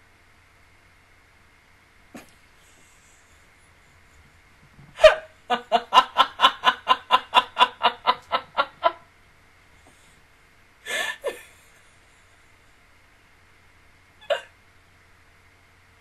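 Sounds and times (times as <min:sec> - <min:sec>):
woman laughing hard: 0:04.9 - 0:09.0, 0:10.9 - 0:11.6.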